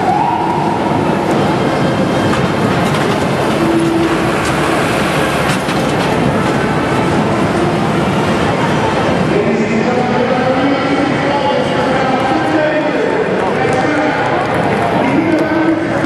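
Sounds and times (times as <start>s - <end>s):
siren wailing: 0.0s - 1.4s
vehicles driving past: 0.0s - 16.0s.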